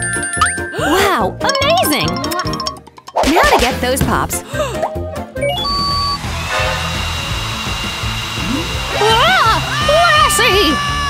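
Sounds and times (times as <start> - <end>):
vacuum cleaner motor whining: 5.6 - 11.0.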